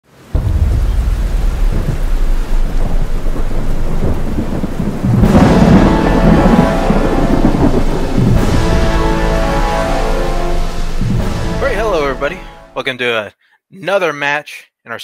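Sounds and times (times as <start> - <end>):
steady rain: 0.0 - 12.8
rolling thunder: 0.2 - 12.7.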